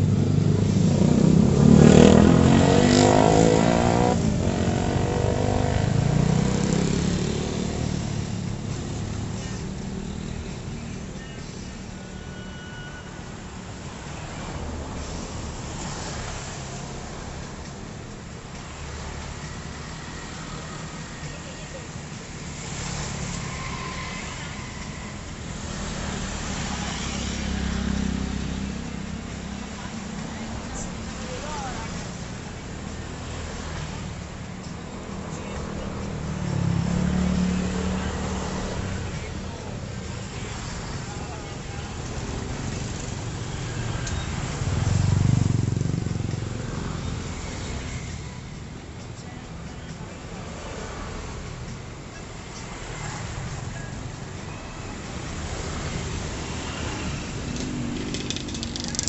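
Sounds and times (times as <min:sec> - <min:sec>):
motorbikes and cars passing: 0:00.0 - 0:12.0, 0:13.2 - 0:59.0.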